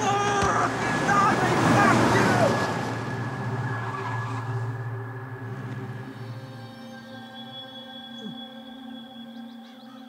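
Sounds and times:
people shouting: 0.0 - 4.4
car driving past: 0.4 - 6.5.

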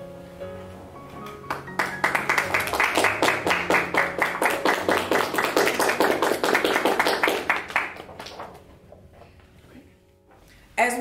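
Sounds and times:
people clapping: 1.2 - 8.7.

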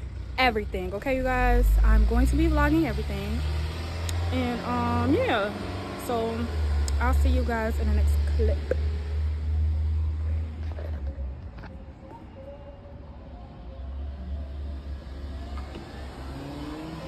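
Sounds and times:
car engine accelerating: 0.0 - 12.0, 13.3 - 17.0.

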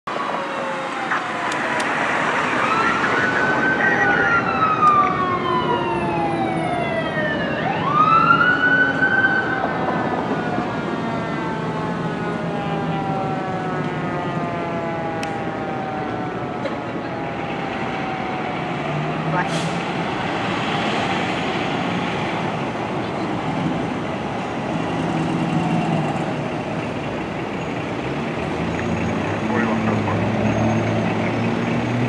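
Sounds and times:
fire engine siren wailing: 0.1 - 32.0
traffic noise: 0.1 - 32.0.

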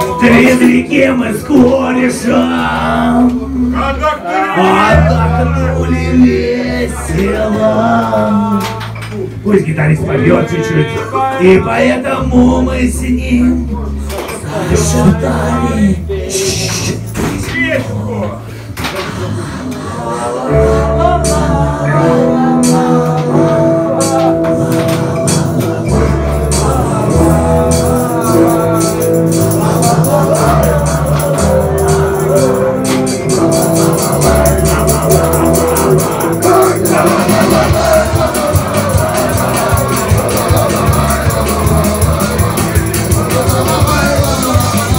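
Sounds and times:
bass: 0.0 - 44.9
man's voice: 0.0 - 44.9
electric guitars sustained notes: 20.4 - 44.9.

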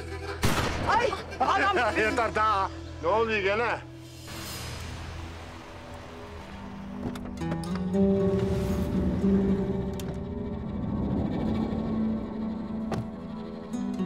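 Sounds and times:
low sustained drama score: 0.0 - 14.0.

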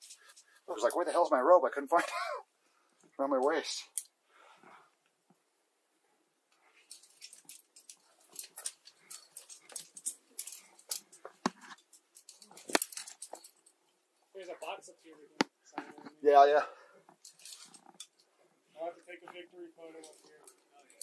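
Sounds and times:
climbing hardware clinking: 6.6 - 13.9, 17.1 - 18.3, 19.2 - 21.0.

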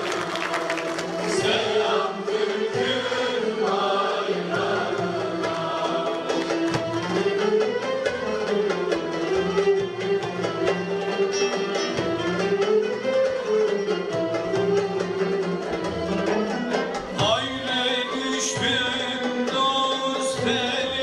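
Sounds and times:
folk ensemble with strings and ouds: 0.0 - 21.0.

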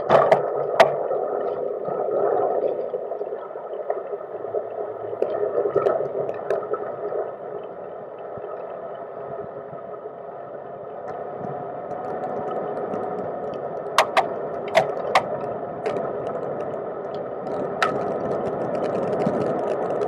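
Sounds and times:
wind: 0.0 - 1.7, 13.8 - 20.0.

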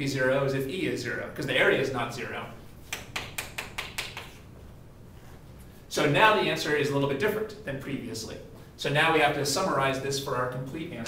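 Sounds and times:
chalk tapping on chalkboard: 2.8 - 4.4.

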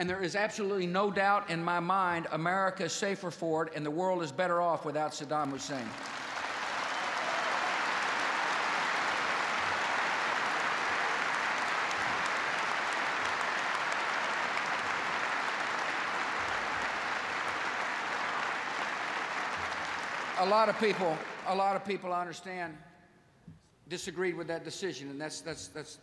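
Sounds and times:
large audience applauding: 5.5 - 22.0.

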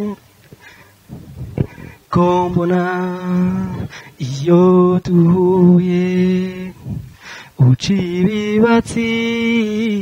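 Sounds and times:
man singing unaccompanied: 0.0 - 0.3, 1.1 - 10.0
singer breathing: 0.5 - 2.1, 3.8 - 4.2, 6.7 - 7.6.

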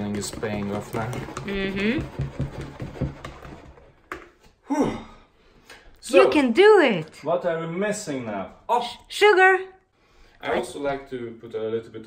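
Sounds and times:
whisk scraping a bowl: 0.0 - 4.0.

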